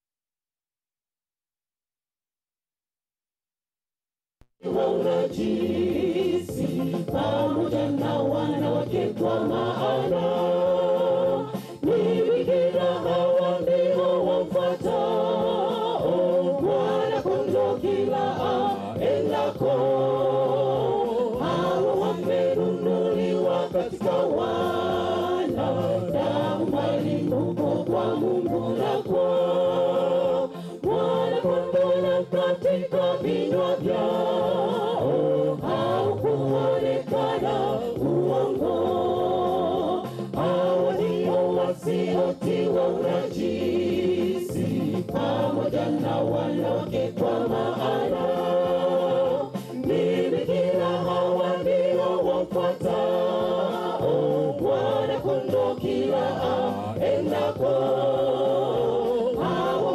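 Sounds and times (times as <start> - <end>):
mixed choir singing in harmony: 4.6 - 59.9.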